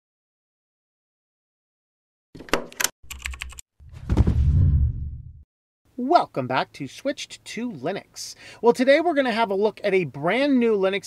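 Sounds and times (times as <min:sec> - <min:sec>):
deep boom: 0:03.9 - 0:05.4.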